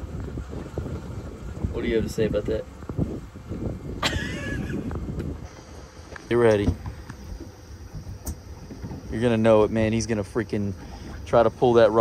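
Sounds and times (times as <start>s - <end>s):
boat engine low rumble: 0.0s - 12.0s.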